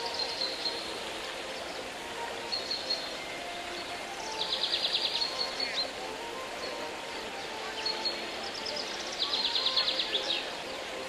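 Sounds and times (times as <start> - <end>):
flowing water: 0.0 - 11.0
bird chirping: 3.8 - 5.9, 7.8 - 10.5.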